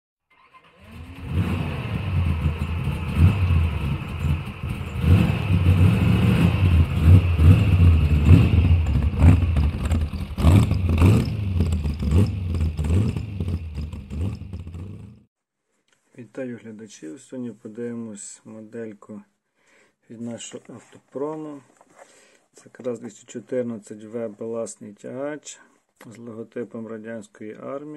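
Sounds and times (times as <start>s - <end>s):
car engine revving: 0.5s - 15.3s.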